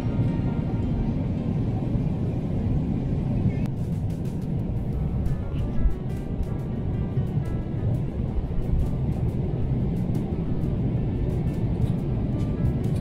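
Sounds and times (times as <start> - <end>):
airplane cabin drone: 0.0 - 13.0
background music: 3.6 - 13.0
light ticking beat: 3.7 - 13.0.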